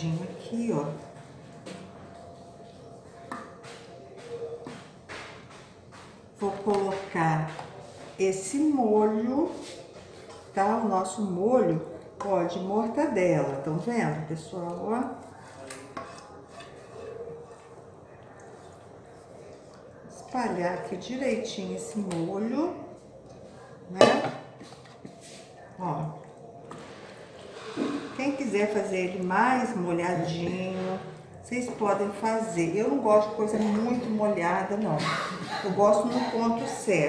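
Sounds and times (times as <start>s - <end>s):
soft shuffling of pasta: 7.5s - 10.9s, 11.7s - 21.9s, 24.5s - 34.7s.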